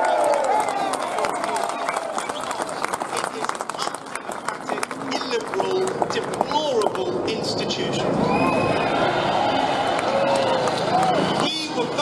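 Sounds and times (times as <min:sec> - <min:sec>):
large crowd cheering and shouting: 0:00.0 - 0:02.7, 0:07.8 - 0:12.0.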